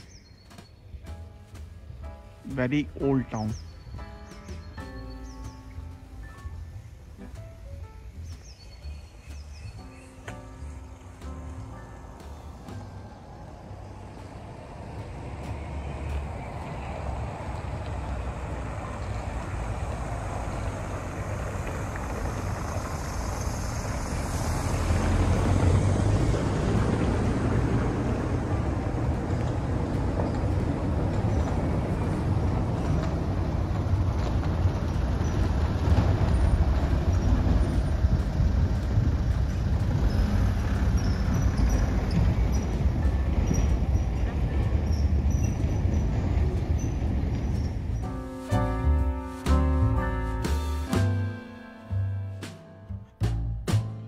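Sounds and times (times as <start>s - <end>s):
vehicle rumbling on cobblestones: 0.0s - 54.0s.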